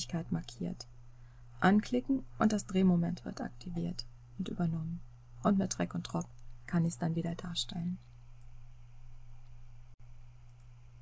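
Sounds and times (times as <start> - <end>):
low background hum: 0.0 - 11.0
faint computer mouse clicks: 10.4 - 10.8.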